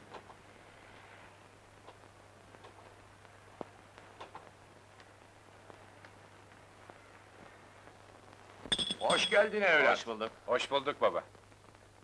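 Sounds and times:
low steady hum: 0.0s - 12.0s
soundtrack hiss: 0.0s - 12.0s
man talking: 9.0s - 11.3s.

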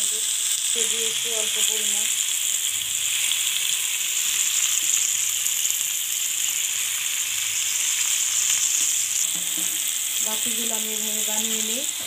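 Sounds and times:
chicken sizzling in hot oil: 0.0s - 12.0s.

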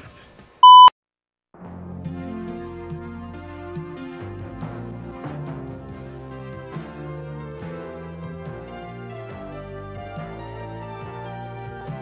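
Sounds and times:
music: 0.0s - 0.6s, 1.6s - 12.0s
electronic beep: 0.6s - 0.9s.

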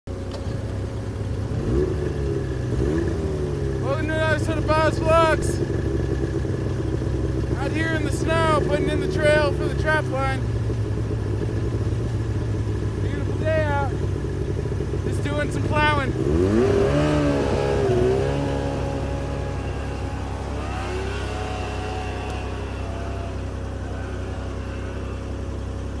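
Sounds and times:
snowmobile engine revving: 1.5s - 5.7s, 7.4s - 10.5s, 12.9s - 26.0s.

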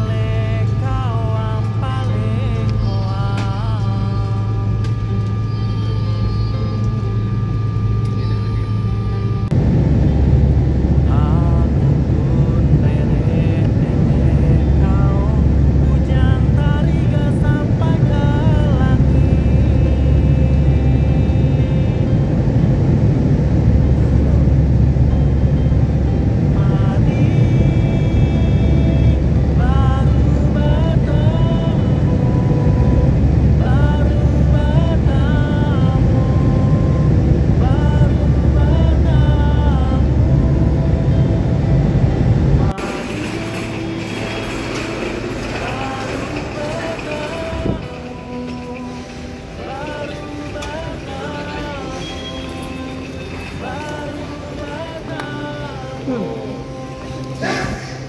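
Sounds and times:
background music with melody: 0.0s - 58.0s
jet engines rumbling in cabin: 0.0s - 58.0s.

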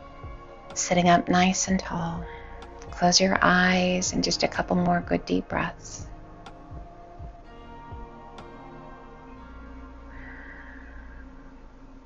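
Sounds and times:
meditative bell-like music: 0.0s - 11.3s.

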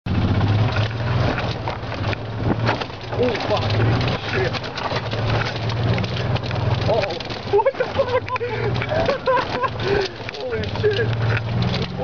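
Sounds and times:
golf cart drive hum: 0.1s - 12.0s
knocks and rattles of cart body: 0.1s - 12.0s.

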